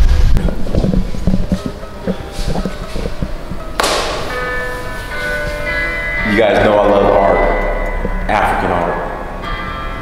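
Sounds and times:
ringing bell-like tones: 1.6s - 10.0s
sudden struck hit: 3.8s - 4.6s.

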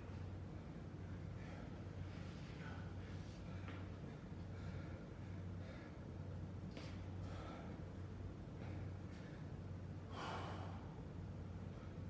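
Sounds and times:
man breathing hard: 1.3s - 8.0s, 8.6s - 11.0s.

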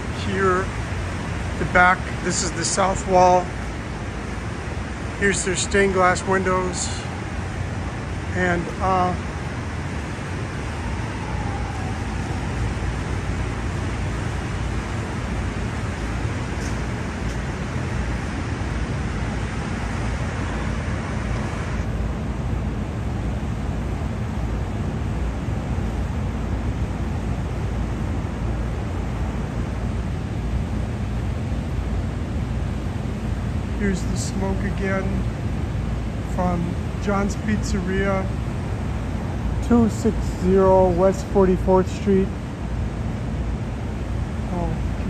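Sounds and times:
city rumble: 0.0s - 45.0s.

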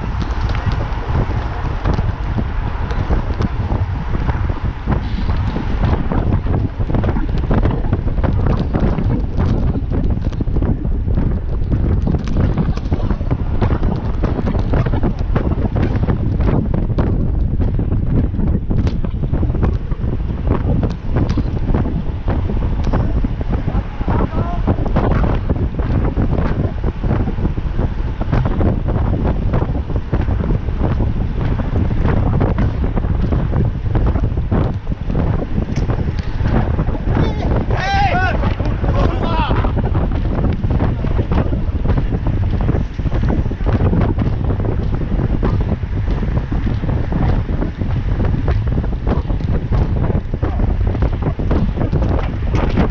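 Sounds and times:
road knocks and rattles: 0.0s - 52.9s
wind buffeting microphone: 0.0s - 52.9s.

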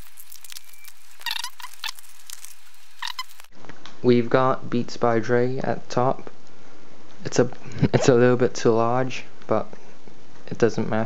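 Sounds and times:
plastic film crackling: 0.0s - 3.5s.

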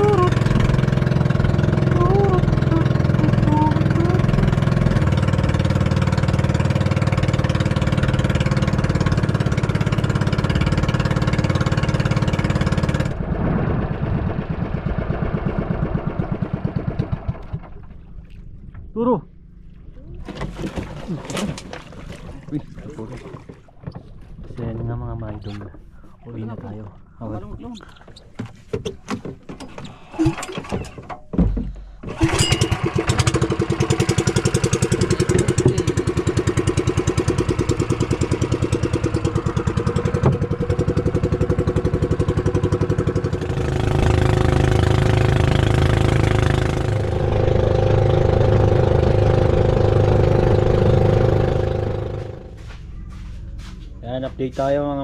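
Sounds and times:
boat engine running: 0.0s - 55.0s.

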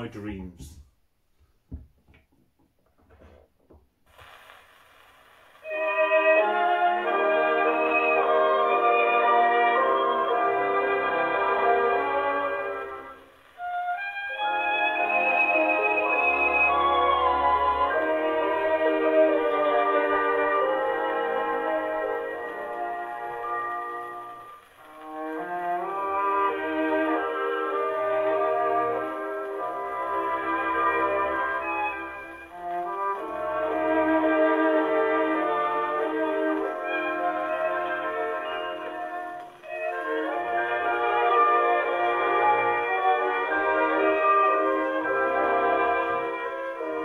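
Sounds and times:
record surface hiss: 0.0s - 47.0s
violin-led orchestral music on gramophone: 4.1s - 47.0s.

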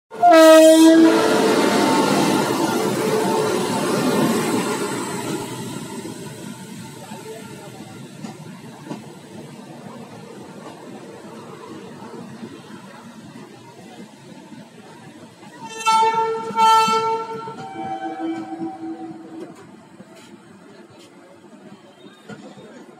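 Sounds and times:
locomotive horn: 0.1s - 1.9s, 15.6s - 19.7s
train rumbling past: 0.1s - 22.9s.

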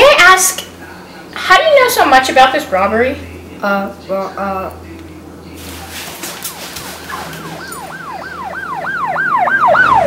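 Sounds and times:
siren yelping: 6.9s - 10.0s.

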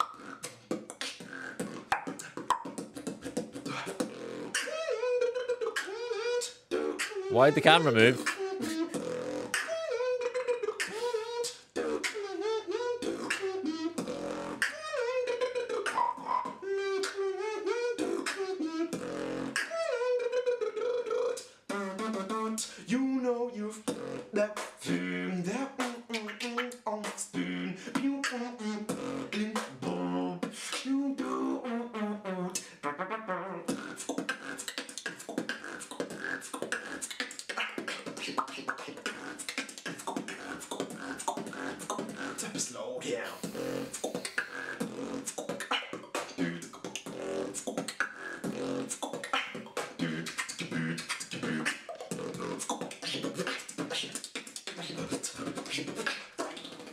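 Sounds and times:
beatboxing: 0.0s - 56.9s.

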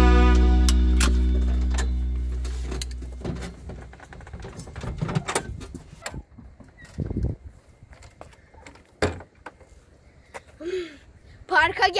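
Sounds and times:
background music: 0.0s - 2.6s
thump of climbing out: 1.0s - 7.2s
person shifting in seat: 1.0s - 7.3s.

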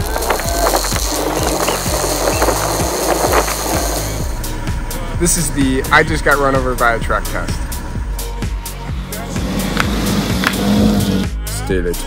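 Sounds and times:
sign scraping over asphalt: 0.0s - 4.3s, 9.0s - 11.3s
background music with steady beat: 0.0s - 12.0s.

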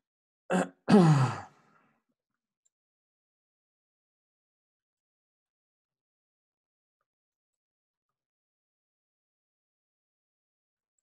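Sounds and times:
man sighing: 0.5s - 1.5s.

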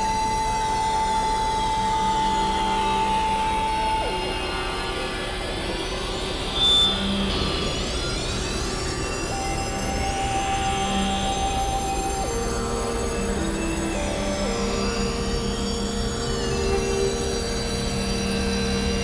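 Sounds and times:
synthesizer drone music: 0.0s - 19.0s.

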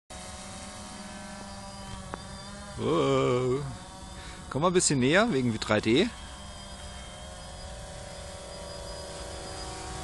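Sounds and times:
quadcopter propellers buzzing: 0.1s - 10.0s.

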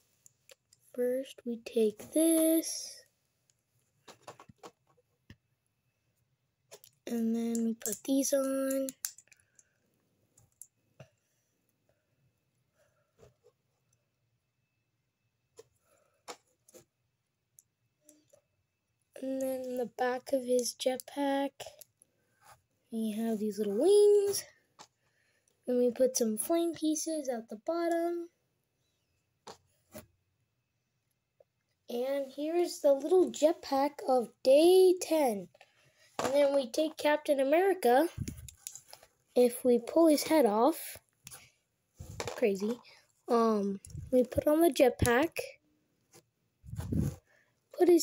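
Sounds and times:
plastic pieces clicking together: 6.7s - 9.7s.

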